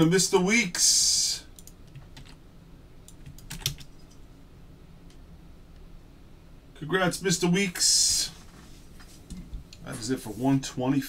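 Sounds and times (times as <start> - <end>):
typing on computer keyboard: 1.6 - 2.4, 3.1 - 4.1.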